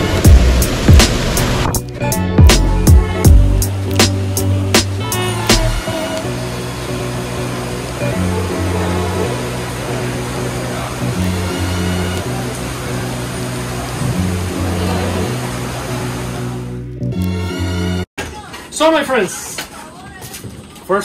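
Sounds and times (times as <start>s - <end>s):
heavy rain hiss: 0.0s - 1.8s, 3.6s - 16.7s
background music with bass line: 0.0s - 18.1s.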